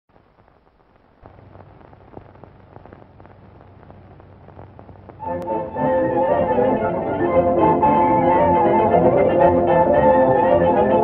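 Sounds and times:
film soundtrack crackle and hiss: 0.1 - 11.0
low hum: 0.1 - 11.0.

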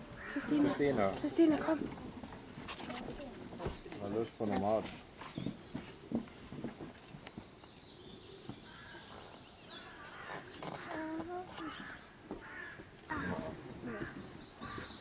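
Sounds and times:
birds calling: 0.0 - 1.8, 2.7 - 6.3, 6.9 - 15.0.

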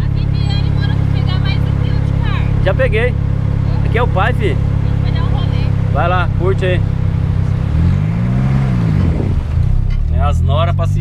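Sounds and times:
car driving past: 0.7 - 11.0.

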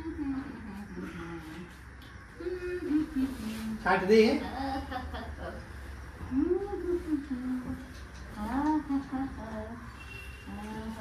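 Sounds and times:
person humming: 2.4 - 3.8.

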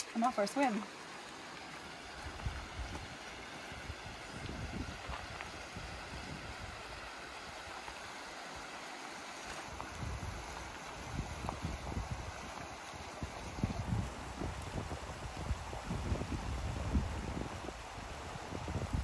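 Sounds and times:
river rushing over gravel: 0.0 - 19.0
wind buffeting microphone: 2.1 - 8.2, 9.4 - 19.0.

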